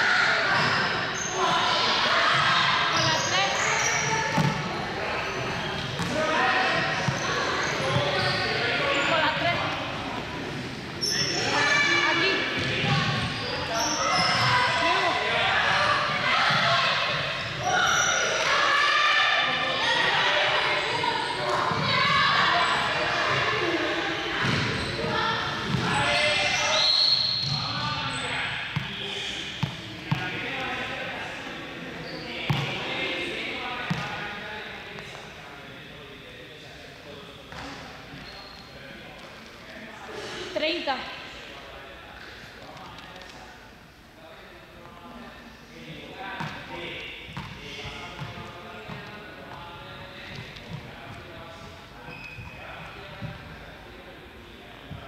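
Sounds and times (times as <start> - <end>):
indistinct chatter echoing: 0.0 - 55.0
balls bouncing on floor: 25.6 - 25.9, 32.5 - 32.8.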